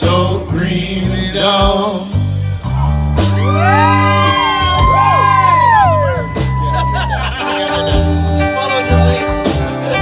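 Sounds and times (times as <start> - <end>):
bass notes: 0.0 - 10.0
live band playing: 0.0 - 10.0
voices whooping: 3.2 - 7.6.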